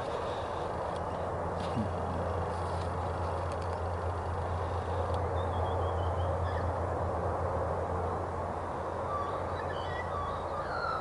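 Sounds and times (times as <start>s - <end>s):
birds chirping: 0.0s - 6.8s, 8.6s - 11.0s
diesel locomotive hum: 0.0s - 11.0s.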